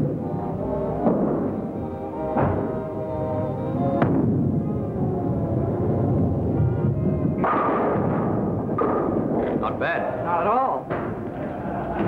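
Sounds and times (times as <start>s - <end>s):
music: 0.0s - 12.0s
bowling pins crashing: 1.0s - 1.7s, 2.3s - 2.9s, 3.9s - 4.9s, 7.2s - 9.8s.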